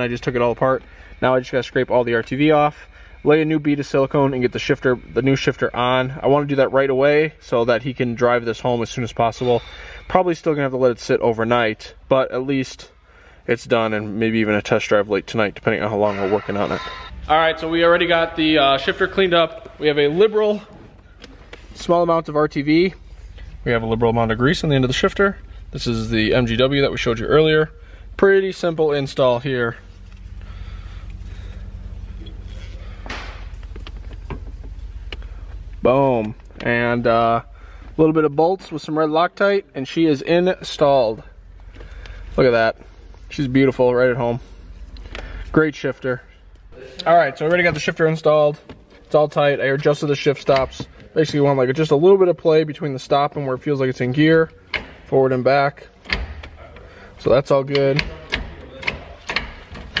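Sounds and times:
steady low hum: 0:00.0 - 1:00.0.

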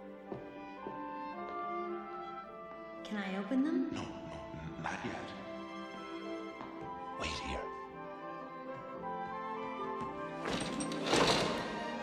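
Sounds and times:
orchestral music with held notes: 0:00.0 - 0:12.0.

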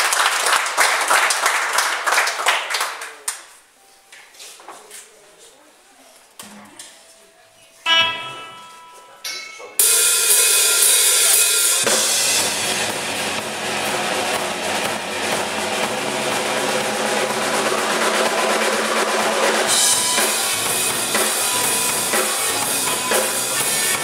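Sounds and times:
ringing guitar chord: 0:07.9 - 0:10.9
rock band playing live: 0:09.8 - 0:24.0.

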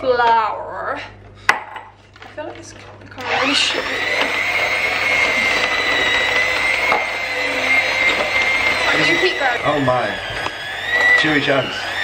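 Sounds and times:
electric hand mixer whining: 0:03.1 - 0:12.0.

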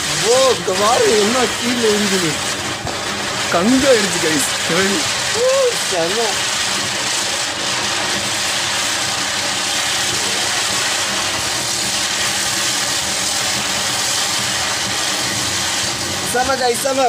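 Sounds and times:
firework hissing: 0:00.0 - 0:17.0.

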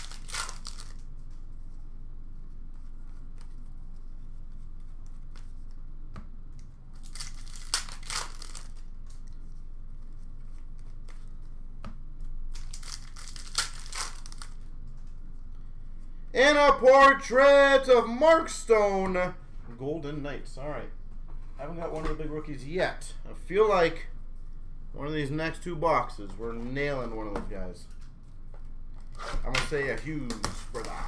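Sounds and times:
wrappers crinkling and tearing: 0:00.0 - 0:01.3, 0:06.9 - 0:09.4, 0:12.4 - 0:14.6.

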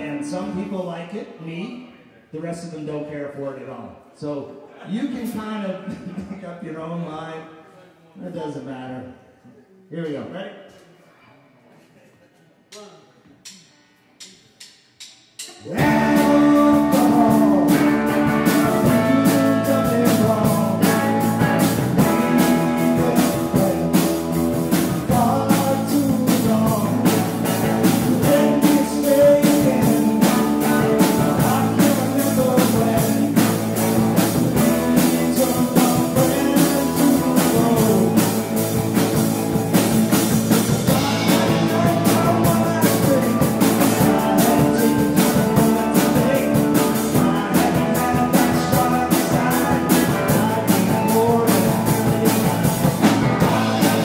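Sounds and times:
live band playing upbeat song: 0:15.7 - 0:54.0.

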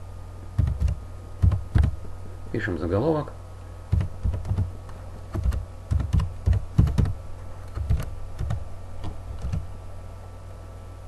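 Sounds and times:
steady low hum: 0:00.0 - 0:11.0
computer keyboard typing: 0:00.6 - 0:02.0, 0:03.9 - 0:04.7, 0:05.3 - 0:08.6, 0:09.3 - 0:09.6.

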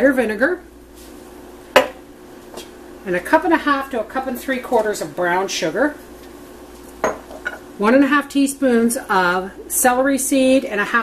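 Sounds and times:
faint steady hum: 0:00.0 - 0:11.0
glass cup clinking on kitchenware: 0:07.0 - 0:07.6.

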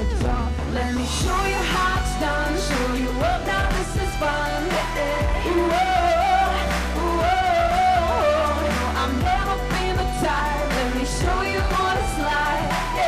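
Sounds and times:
bass and drum beat: 0:00.0 - 0:13.0
woman singing: 0:00.0 - 0:13.0.

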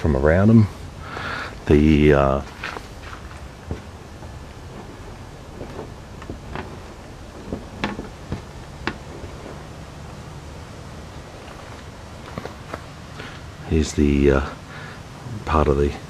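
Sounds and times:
low background rumble: 0:00.0 - 0:16.0
soil scraping and knocks: 0:01.2 - 0:13.5.

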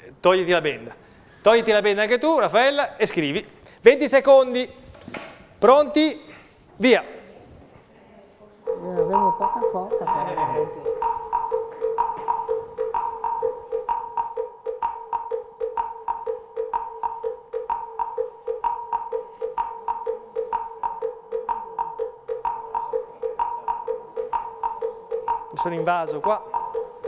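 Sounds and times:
ticking countdown music: 0:08.6 - 0:27.0.

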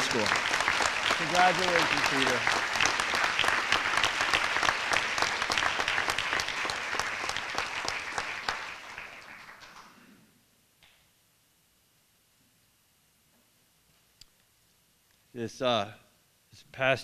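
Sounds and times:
audience applauding: 0:00.0 - 0:10.1.

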